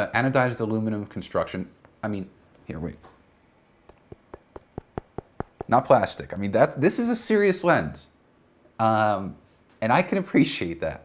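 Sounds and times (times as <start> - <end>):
light metallic taps: 3.9 - 6.5.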